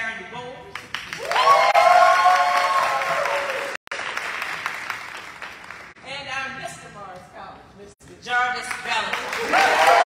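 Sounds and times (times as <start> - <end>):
cheering voices: 1.2 - 3.8, 9.4 - 10.0
audience applause: 1.2 - 6.0, 9.2 - 10.0.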